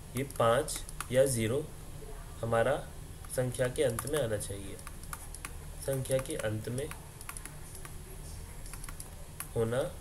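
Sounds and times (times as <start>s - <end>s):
low background hum: 0.0s - 10.0s
stylus tapping on tablet screen: 3.9s - 8.0s.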